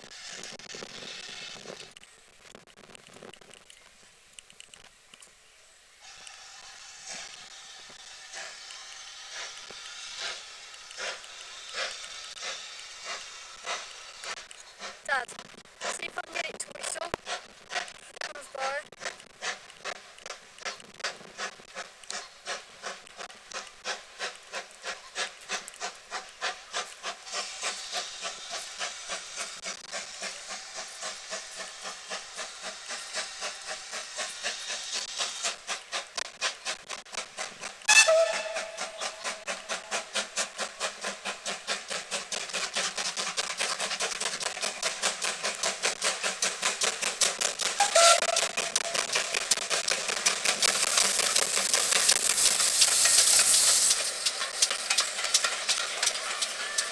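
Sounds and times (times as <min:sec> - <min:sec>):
loud steam hiss: 0:00.0 - 0:01.9, 0:06.0 - 0:18.8, 0:20.4 - 0:56.9
steam locomotive exhaust beats: 0:00.0 - 0:05.2, 0:05.8 - 0:56.9
train whistle blasts: 0:37.8 - 0:40.0, 0:47.8 - 0:49.2.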